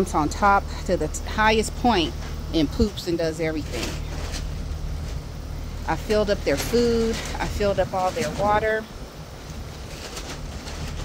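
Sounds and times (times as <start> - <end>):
wind blowing across microphone: 3.7 - 11.0.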